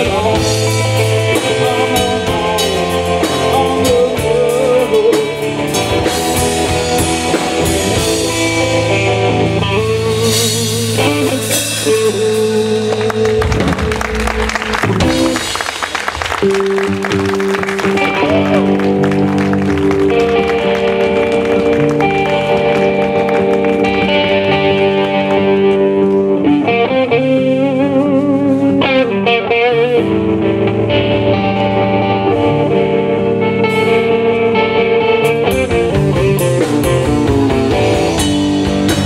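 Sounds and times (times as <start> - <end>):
blues-rock band playing: 0.0 - 39.0
long held electric guitar notes: 0.0 - 39.0.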